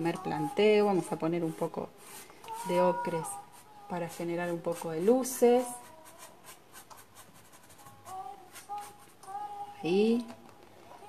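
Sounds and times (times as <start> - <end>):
paintbrush dabbing paint: 0.0 - 9.6.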